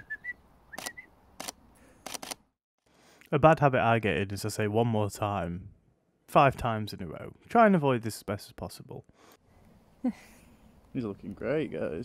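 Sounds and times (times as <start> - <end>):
camera shutter clicking: 0.8 - 2.4.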